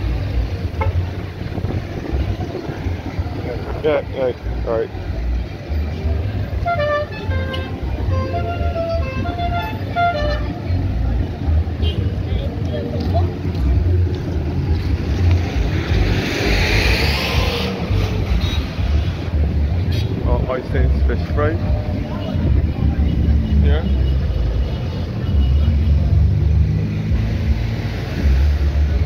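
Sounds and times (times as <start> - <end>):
wind rumble on microphone: 0.0 - 4.5, 13.0 - 23.4
road traffic: 0.0 - 29.0
vehicle passing close: 13.1 - 19.7.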